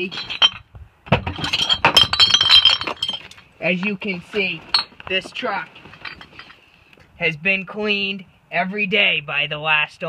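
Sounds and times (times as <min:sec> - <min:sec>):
glass bottles clinking together: 0:00.0 - 0:03.4, 0:04.6 - 0:05.2, 0:05.8 - 0:06.6.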